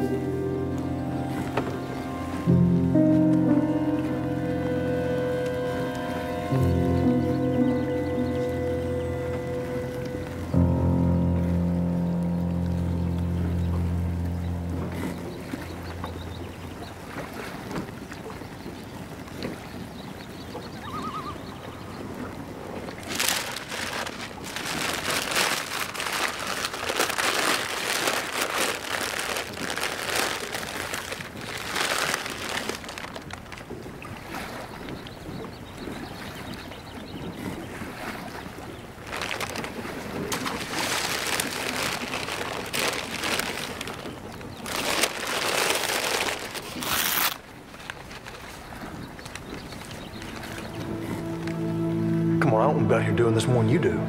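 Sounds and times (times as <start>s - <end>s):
water around a boat: 0.0s - 54.0s
wind: 0.0s - 54.0s.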